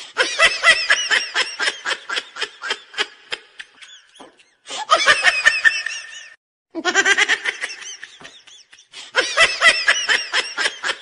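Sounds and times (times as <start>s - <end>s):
person laughing high-pitched: 0.2s - 11.0s.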